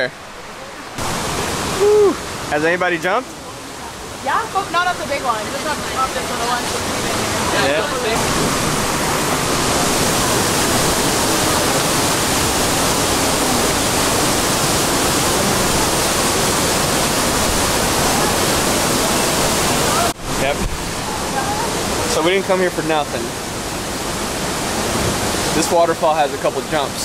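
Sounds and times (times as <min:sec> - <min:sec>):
waterfall rushing: 0:00.0 - 0:27.0.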